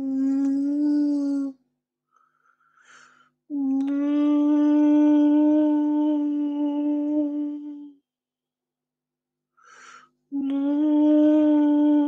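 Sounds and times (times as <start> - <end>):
man humming a held note: 0.0 - 1.6, 3.5 - 8.0, 10.4 - 12.0.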